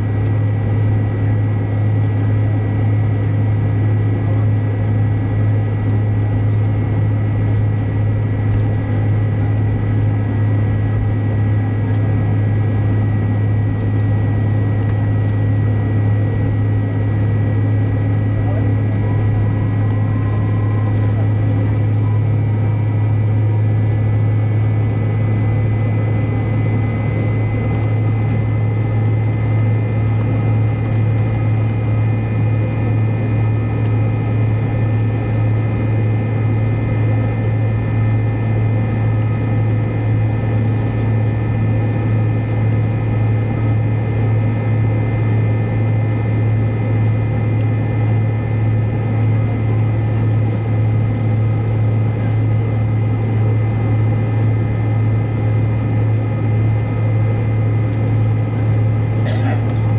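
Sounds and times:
jet engines humming low: 0:00.0 - 0:59.9
thin engine whine: 0:00.0 - 0:59.9.

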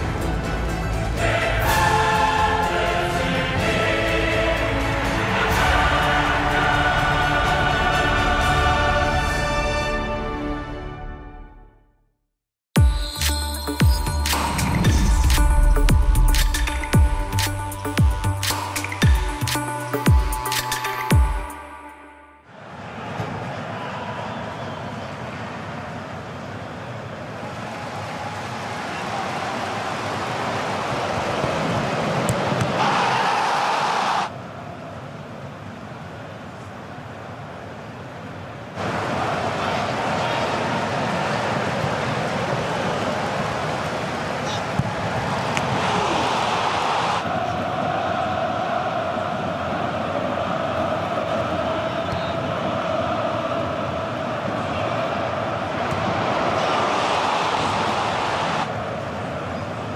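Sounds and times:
stadium crowd roar: 0:00.0 - 0:10.8, 0:22.4 - 0:59.9.

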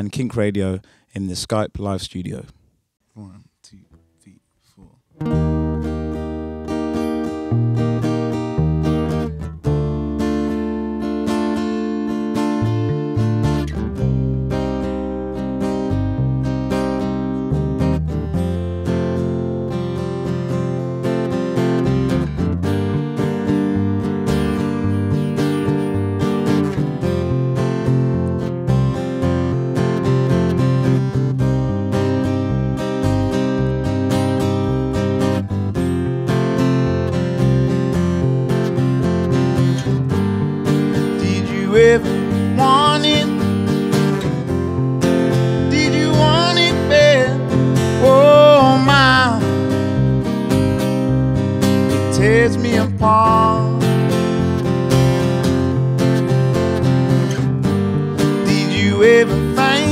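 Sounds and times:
acoustic guitar chords: 0:03.1 - 0:59.9
electric bass low notes: 0:04.7 - 0:59.9.

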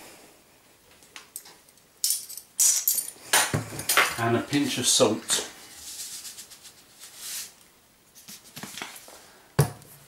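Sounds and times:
utensils rattling: 0:02.0 - 0:03.2.

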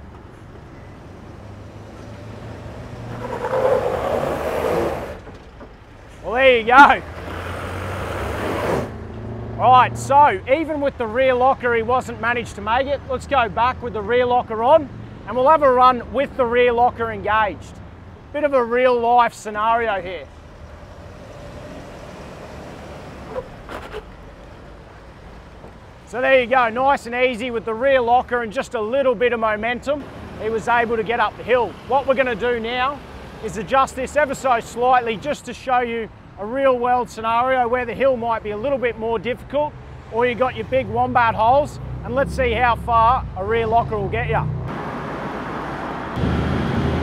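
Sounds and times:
truck engine straining: 0:00.0 - 0:35.6, 0:38.7 - 0:47.0.

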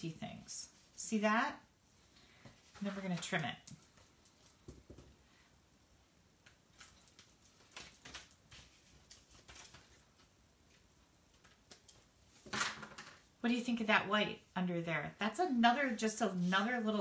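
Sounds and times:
paper rustling: 0:06.7 - 0:11.9.

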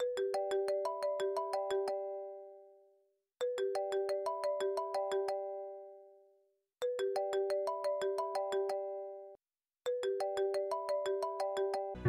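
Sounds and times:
mobile phone ringtone: 0:07.0 - 0:12.0.

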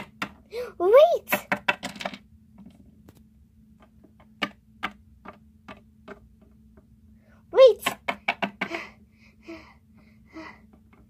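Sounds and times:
plastic toy tapping on tabletop: 0:01.3 - 0:02.2, 0:04.1 - 0:06.5, 0:07.8 - 0:08.8.

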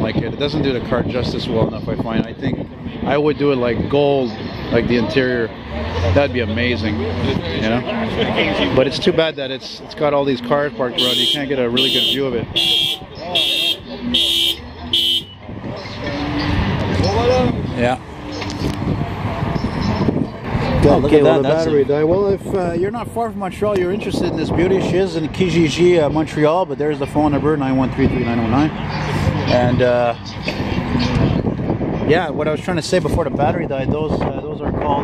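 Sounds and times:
outdoor street noise: 0:00.0 - 0:35.0
man talking: 0:06.1 - 0:07.9, 0:08.6 - 0:14.3, 0:20.8 - 0:28.8, 0:29.4 - 0:30.2.

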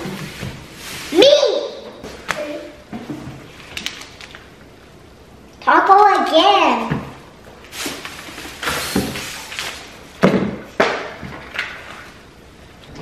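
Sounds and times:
plastic packaging crinkling: 0:03.5 - 0:04.5, 0:07.6 - 0:10.0.

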